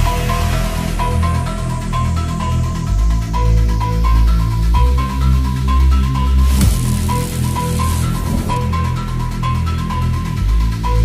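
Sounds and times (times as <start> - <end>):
deep synth bass notes: 5.6 - 9.8.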